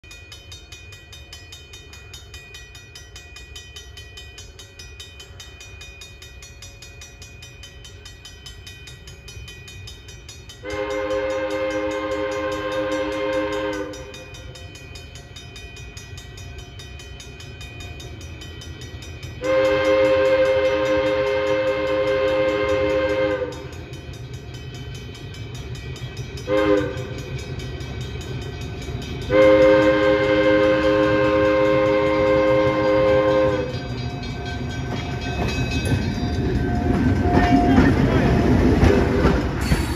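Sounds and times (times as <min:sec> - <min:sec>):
locomotive air horn blasts: 0:10.6 - 0:14.1, 0:19.4 - 0:23.7, 0:26.5 - 0:27.1, 0:29.3 - 0:33.8.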